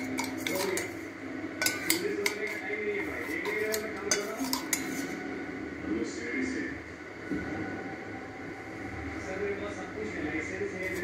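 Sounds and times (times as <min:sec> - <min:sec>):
utensil clinking ceramic bowl: 0:00.0 - 0:01.0, 0:01.6 - 0:05.1.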